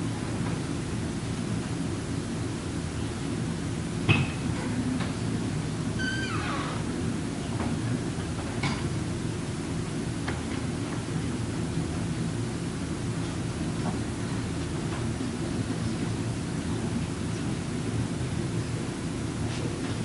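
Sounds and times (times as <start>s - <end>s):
conference room rumble: 0.0s - 20.0s.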